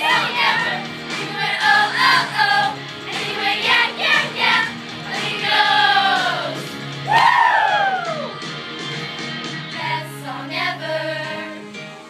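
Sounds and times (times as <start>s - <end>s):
girls' choir singing pop song: 0.0s - 8.1s, 9.6s - 12.0s
musical accompaniment: 0.0s - 12.0s.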